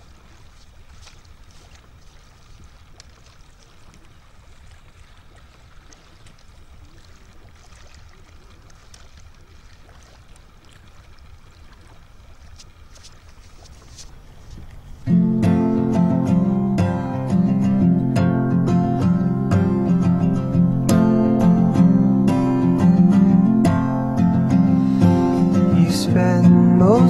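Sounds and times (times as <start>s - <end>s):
water lapping with low rumble: 0.0s - 27.0s.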